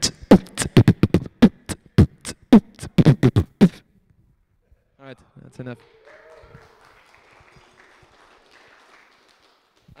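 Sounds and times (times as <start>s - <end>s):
man beatboxing: 0.0s - 3.9s.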